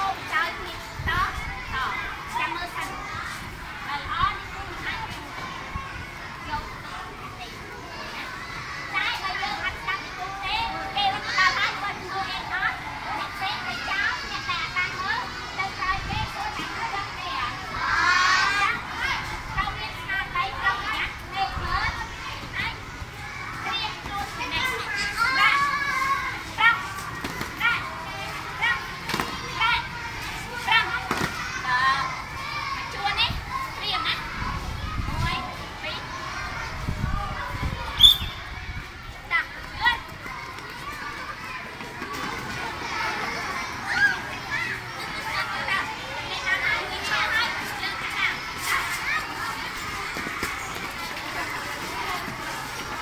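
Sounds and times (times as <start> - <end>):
children chattering and calling out: 0.0 - 53.0.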